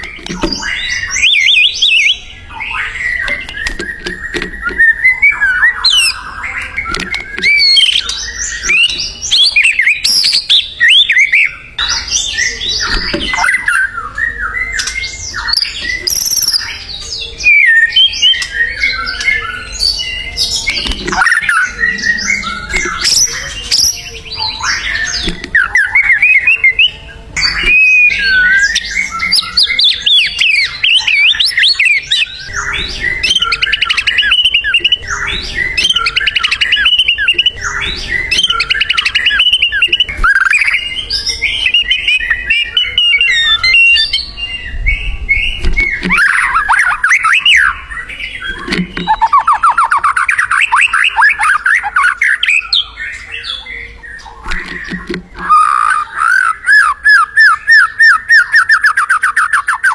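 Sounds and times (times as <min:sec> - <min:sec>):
songbird singing whistled phrases: 0:00.0 - 0:59.9.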